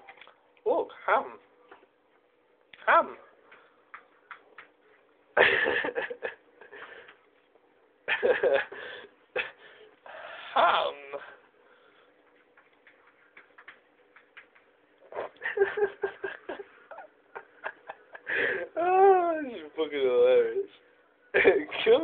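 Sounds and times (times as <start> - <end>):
faint steady hum: 0.0 - 22.0
man laughing: 5.4 - 6.8, 8.1 - 9.6, 15.2 - 19.5, 21.4 - 21.7.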